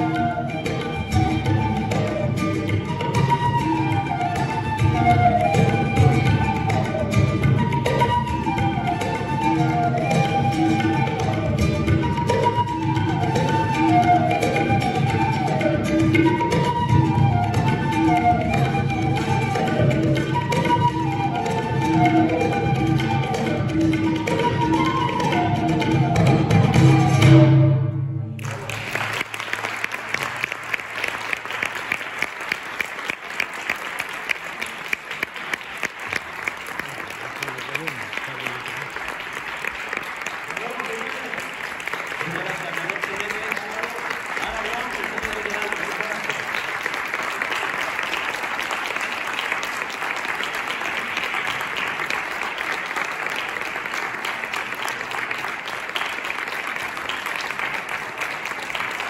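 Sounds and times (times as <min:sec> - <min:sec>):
audience applauding: 0:00.0 - 0:22.4, 0:28.4 - 0:59.0.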